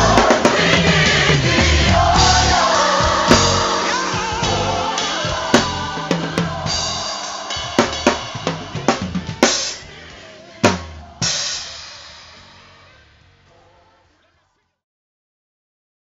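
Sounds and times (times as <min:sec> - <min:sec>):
snare and tom drum fill: 0:00.0 - 0:09.9
crash cymbals ringing: 0:00.0 - 0:13.5.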